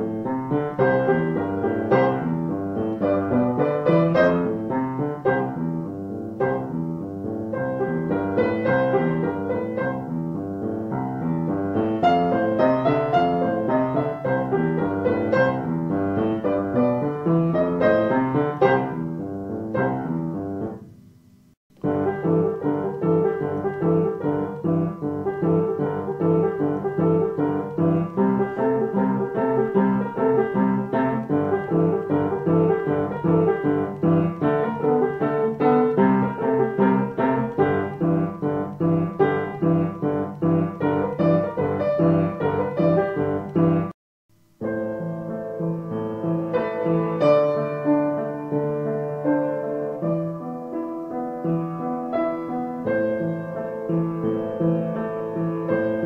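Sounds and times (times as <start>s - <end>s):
piano playing: 0.0s - 56.0s.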